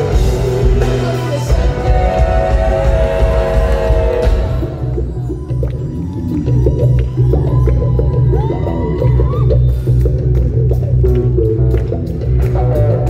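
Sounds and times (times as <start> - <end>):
live band playing loud: 0.0 - 13.0.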